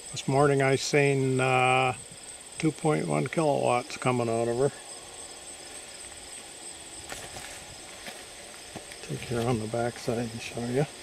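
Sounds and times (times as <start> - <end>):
crickets trilling: 0.0 - 11.0
footsteps on grass: 5.6 - 10.3.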